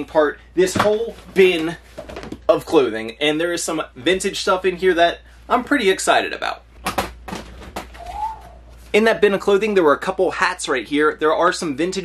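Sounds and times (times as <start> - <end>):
faint rising and falling tone: 8.0 - 8.8.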